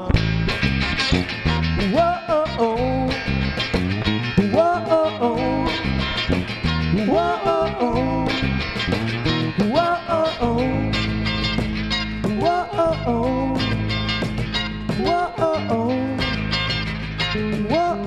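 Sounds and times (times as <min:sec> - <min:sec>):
bass guitar: 0:00.0 - 0:18.0
electric guitars: 0:00.0 - 0:18.0
drums: 0:00.1 - 0:18.0.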